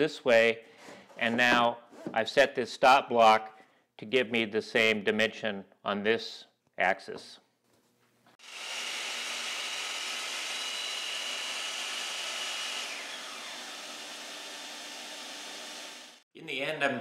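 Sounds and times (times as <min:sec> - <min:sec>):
miter saw motor whine: 0:08.4 - 0:16.2
saw cutting plywood: 0:08.4 - 0:16.2.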